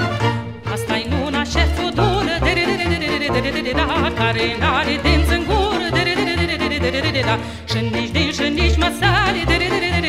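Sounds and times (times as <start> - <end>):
folk band with steady bass: 0.0 - 10.0
woman singing ornamented melody: 0.6 - 10.0.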